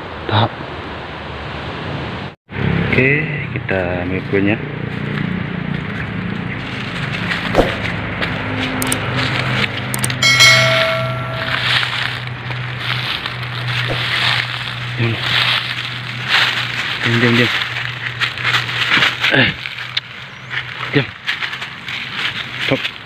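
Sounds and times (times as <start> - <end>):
footsteps through dry leaves: 4.8 - 9.8, 11.6 - 23.0
steady high tone: 10.2 - 11.9.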